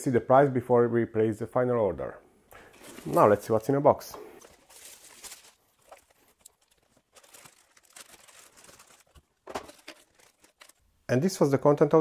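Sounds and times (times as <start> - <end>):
plastic bags crinkling: 2.7 - 3.7, 4.4 - 10.9.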